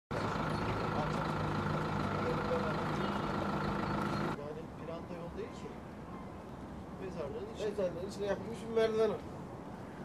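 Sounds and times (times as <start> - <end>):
vehicle engine idling: 0.1 - 4.4.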